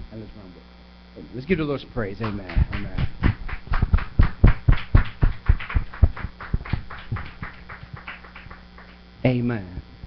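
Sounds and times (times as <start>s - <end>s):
rhythmic hand clapping: 2.2s - 9.1s.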